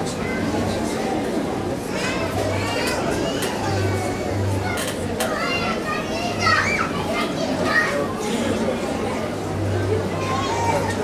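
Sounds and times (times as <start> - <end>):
babble of congregation voices: 0.0 - 11.0
children's voices: 0.0 - 11.0.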